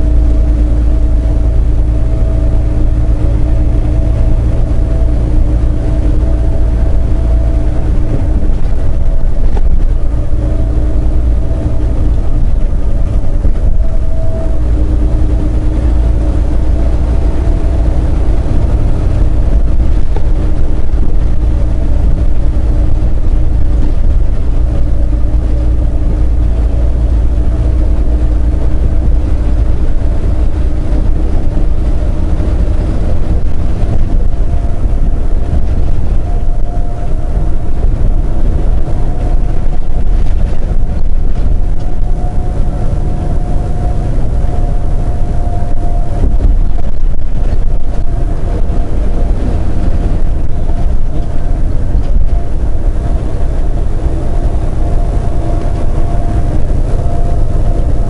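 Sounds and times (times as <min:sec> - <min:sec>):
diesel truck engine hum: 0:00.0 - 0:58.0
road noise: 0:00.0 - 0:58.0.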